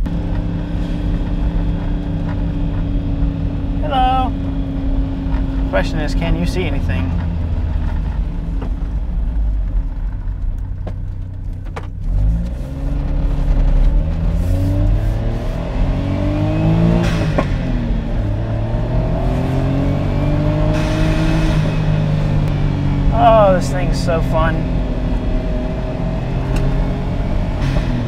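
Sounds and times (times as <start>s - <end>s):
car engine revving through gears: 0.0s - 10.9s, 11.5s - 28.0s.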